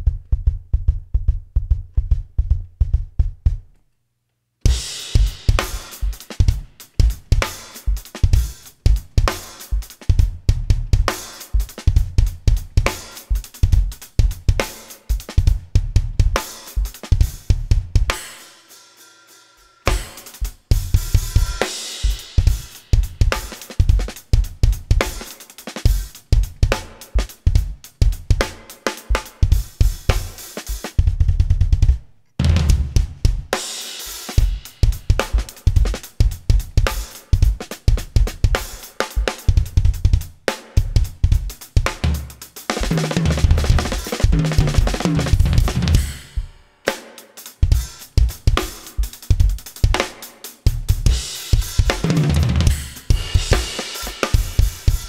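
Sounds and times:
drum kit hits: 4.7 - 18.4, 19.8 - 55.0.

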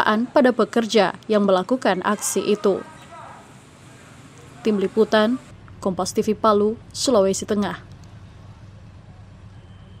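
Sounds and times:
low street rumble: 0.0 - 10.0
vehicle and motorcycle engines: 0.0 - 10.0
faint thin high tone: 9.5 - 10.0.

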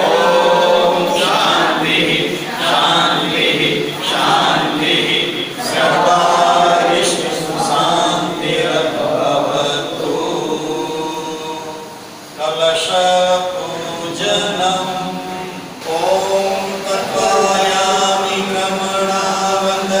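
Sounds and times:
group chanting prayer in unison: 0.0 - 20.0.

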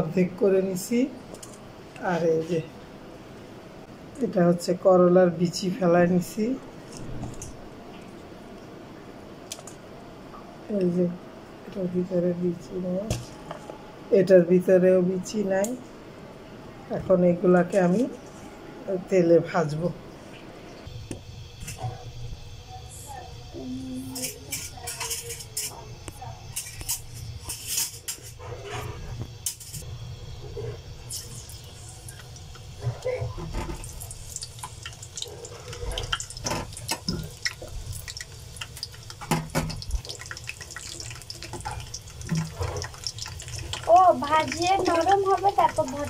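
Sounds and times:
steady low hum: 0.0 - 46.0
vegetables sizzling in hot oil: 29.9 - 46.0
oil crackling and spitting: 33.7 - 46.0.

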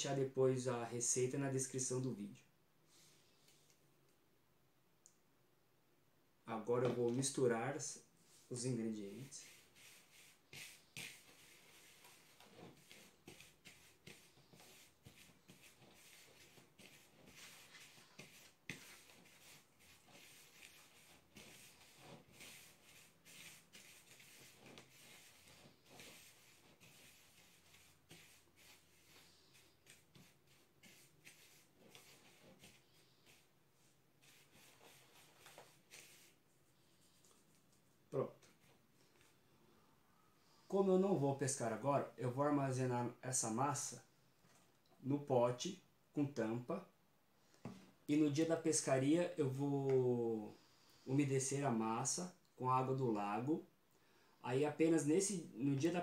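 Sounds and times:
hand stirring dry mix in bowl: 6.8 - 38.8.

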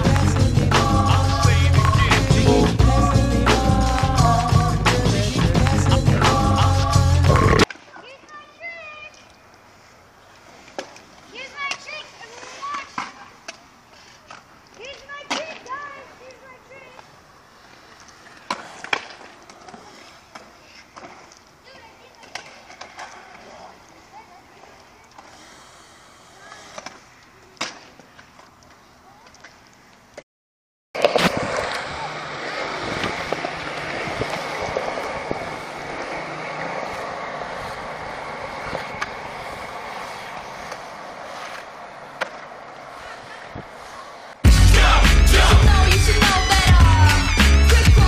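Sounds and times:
skateboards clacking on concrete: 0.0 - 9.5, 10.2 - 25.6, 26.3 - 30.2, 31.0 - 44.4
skateboard wheels rolling: 0.0 - 30.2, 31.0 - 48.0.

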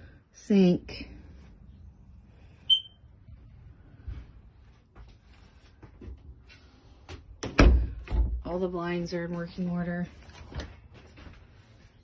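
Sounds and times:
short high-pitched electronic beep: 2.7 - 3.0.

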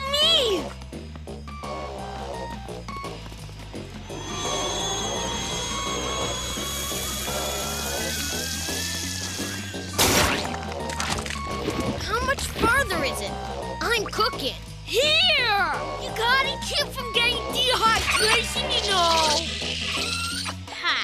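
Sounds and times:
cartoon background music: 0.0 - 21.0
hissing sound effect with whine: 4.0 - 10.6.

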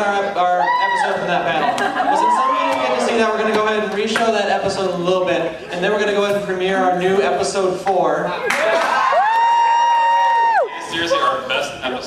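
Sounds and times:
high-pitched cheering whoop: 0.5 - 1.3, 2.0 - 3.1, 8.5 - 10.9.

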